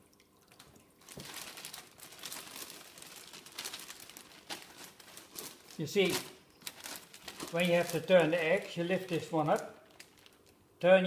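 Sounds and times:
plastic bag crinkling: 0.5 - 10.6.

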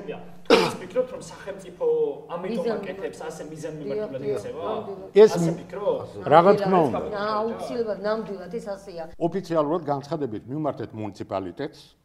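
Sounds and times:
person clearing throat: 0.4 - 1.0.

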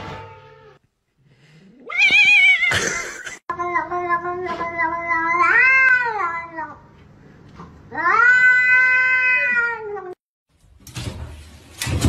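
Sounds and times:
cat meowing: 8.0 - 10.2.

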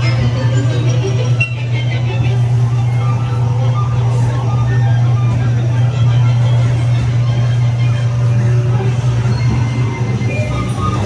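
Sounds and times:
crowd chatter: 0.0 - 11.0
ride car rolling on track: 0.0 - 11.0.

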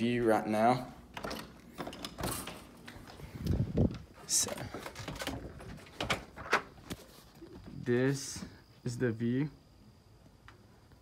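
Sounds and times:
door latch and handle rattling: 1.1 - 2.7.

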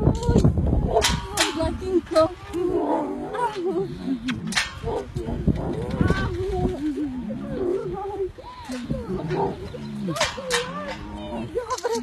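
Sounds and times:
young lion vocal calls: 0.0 - 12.0.

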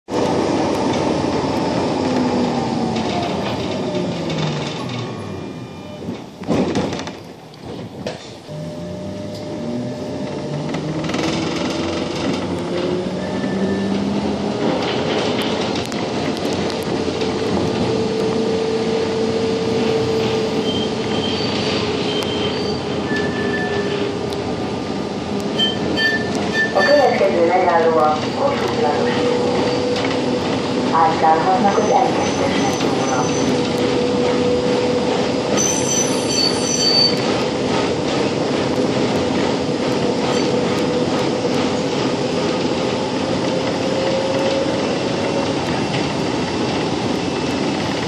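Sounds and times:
wheel and track rumble: 0.1 - 48.0
tram motors whining: 0.2 - 48.0.

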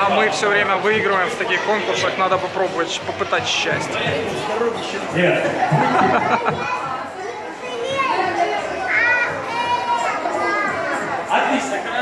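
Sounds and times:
children chattering: 0.0 - 12.0
children's high-pitched calls: 6.4 - 11.3.

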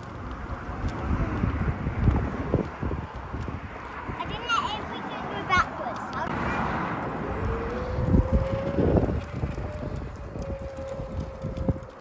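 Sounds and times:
wind gusts on microphone: 0.0 - 12.0
electric motor whining: 7.2 - 11.8.

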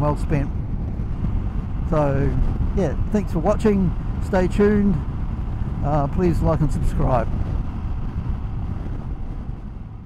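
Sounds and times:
motorcycle road rumble: 0.0 - 10.0
wind rushing over microphone: 0.0 - 10.0.

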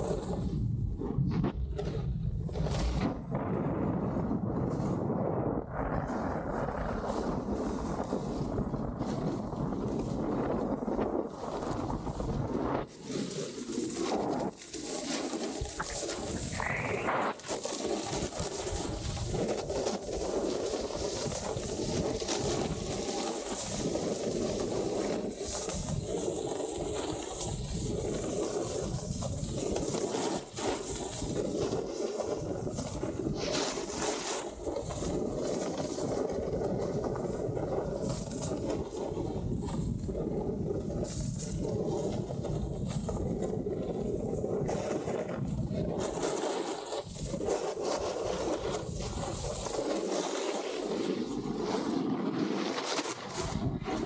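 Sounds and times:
wind rushing over microphone: 0.0 - 13.2, 13.9 - 20.2, 25.0 - 46.3, 53.2 - 54.0
snowboard scraping snow: 0.0 - 54.0.

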